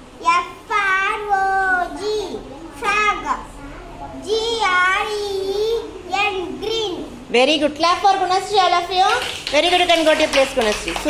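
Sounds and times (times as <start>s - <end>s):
girl reading words aloud: 0.0s - 11.0s.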